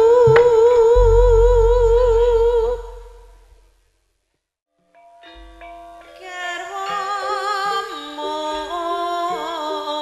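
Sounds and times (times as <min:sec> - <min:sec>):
woman singing with vibrato: 0:00.0 - 0:03.4, 0:06.2 - 0:10.0
sharp drum stroke: 0:00.2 - 0:03.7
gamelan music: 0:00.3 - 0:03.4
deep low boom: 0:00.3 - 0:03.8.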